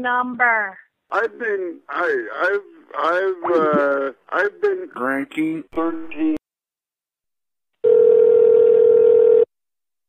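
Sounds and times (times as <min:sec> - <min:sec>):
telephone tone: 0:07.8 - 0:09.5.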